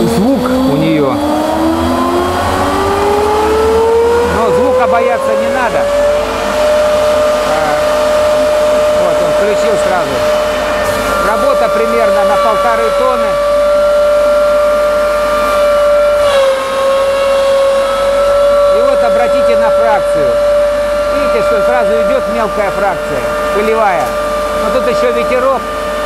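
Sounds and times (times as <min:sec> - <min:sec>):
hay cutter rotor whine: 0:00.0 - 0:26.0.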